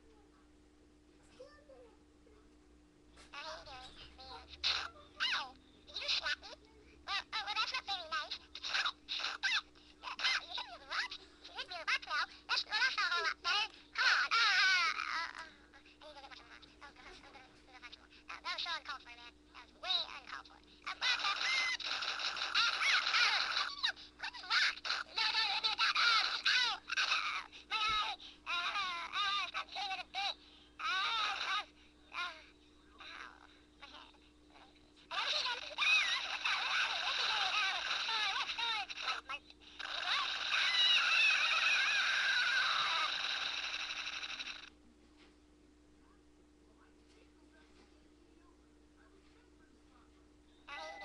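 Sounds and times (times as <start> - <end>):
high-pitched squawking cries: 20.9 - 29.6, 35.1 - 44.7
high wavering voice-like cry: 39.9 - 44.1.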